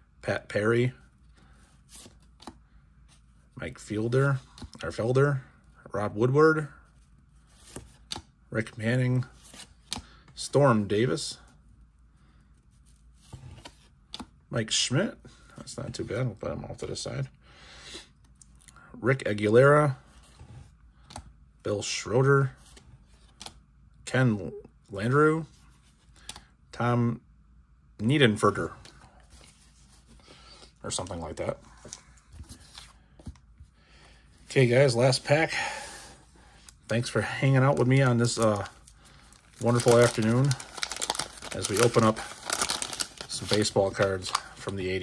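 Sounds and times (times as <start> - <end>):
trading cards ticking and rustling: 36.8 - 44.8.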